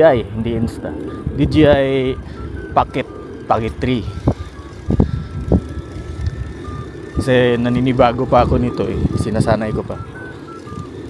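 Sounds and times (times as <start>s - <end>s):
wind and road rumble: 0.0s - 11.0s.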